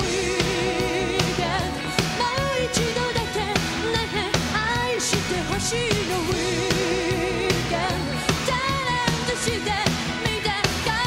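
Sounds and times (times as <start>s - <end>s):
live pop-rock band: 0.0s - 11.0s
woman singing: 0.0s - 11.0s.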